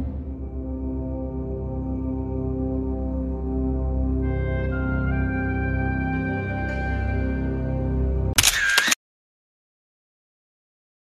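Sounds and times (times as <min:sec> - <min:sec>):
background music: 0:00.0 - 0:08.9
camera shutter sound: 0:08.4 - 0:09.0.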